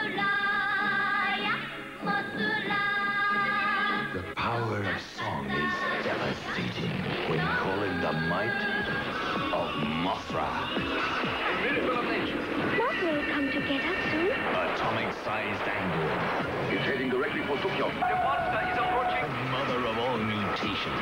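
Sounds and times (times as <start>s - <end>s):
voices: 3.4s - 21.0s.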